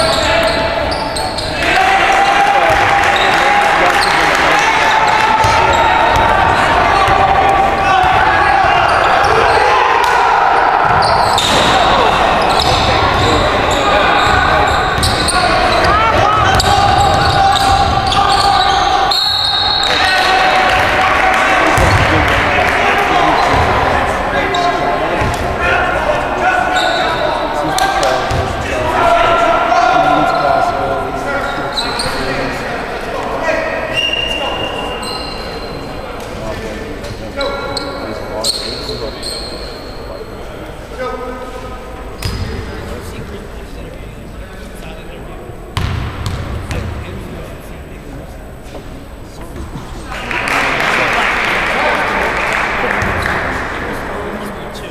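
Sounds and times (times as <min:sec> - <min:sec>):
sneaker squeaks: 0:00.0 - 0:01.7, 0:08.7 - 0:09.7, 0:10.8 - 0:20.2, 0:23.3 - 0:23.8, 0:26.7 - 0:27.4, 0:31.4 - 0:32.4, 0:33.9 - 0:36.0, 0:37.0 - 0:40.5, 0:42.1 - 0:42.6, 0:45.8 - 0:46.9.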